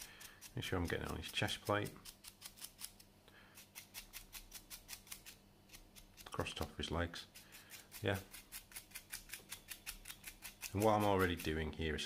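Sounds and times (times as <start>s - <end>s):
stiff brush scrubbing plastic: 0.0s - 2.8s, 5.8s - 11.8s.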